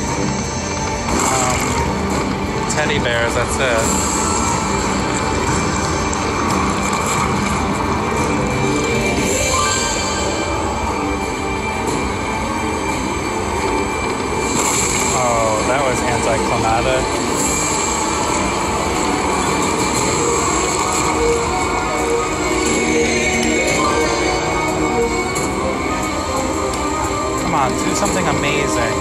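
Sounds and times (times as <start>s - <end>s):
slot machine music: 0.0s - 29.0s
wavering electronic sound effect: 0.0s - 29.0s.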